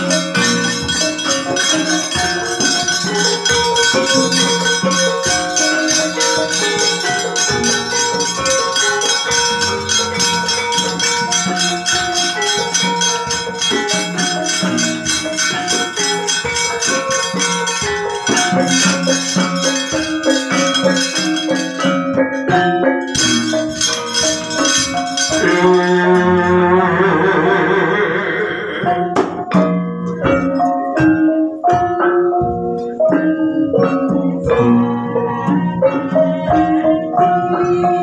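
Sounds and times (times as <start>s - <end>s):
hand drum: 0.0s - 38.0s
hanging gongs: 0.0s - 38.0s
metallophones striking melody: 0.0s - 38.0s.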